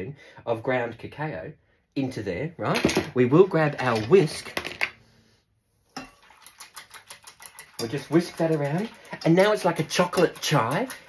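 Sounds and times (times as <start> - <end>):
whisk clicking against saucepan: 6.0 - 11.0.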